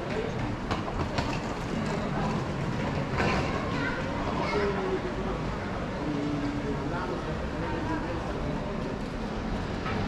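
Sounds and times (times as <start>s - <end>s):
street noise: 0.0s - 10.0s
suitcase wheels clacking on tiles: 0.1s - 3.6s.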